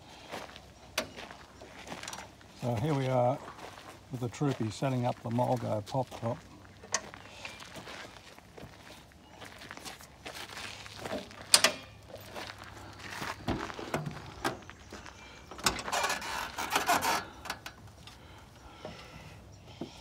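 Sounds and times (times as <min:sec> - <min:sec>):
metal clunks and rattles: 0:11.0 - 0:12.4, 0:13.4 - 0:14.7, 0:15.4 - 0:18.2.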